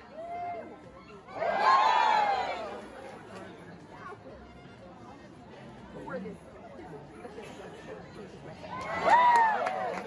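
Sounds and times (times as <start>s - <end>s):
spectators chatting: 0.0s - 10.0s.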